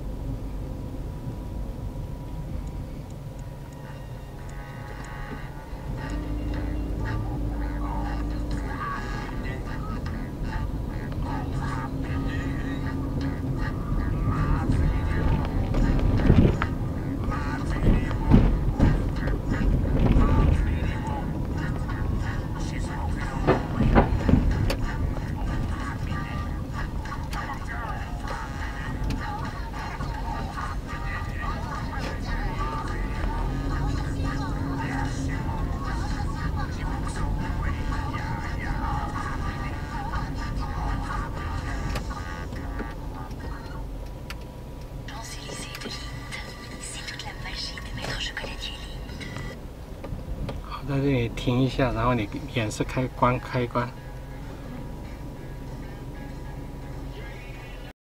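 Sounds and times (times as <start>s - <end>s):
car cabin road rumble: 0.0s - 58.0s
music: 2.2s - 49.6s, 50.7s - 57.9s
speech: 50.7s - 54.0s.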